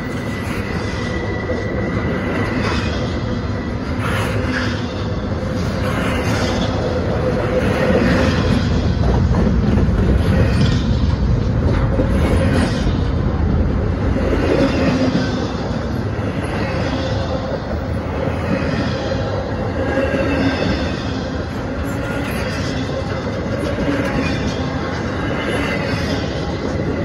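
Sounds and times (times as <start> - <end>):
train wheels clattering on rail: 0.0 - 27.0.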